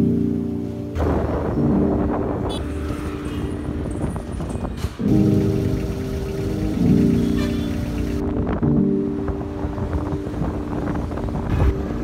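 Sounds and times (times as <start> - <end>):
wind buffeting microphone: 1.0 - 12.0.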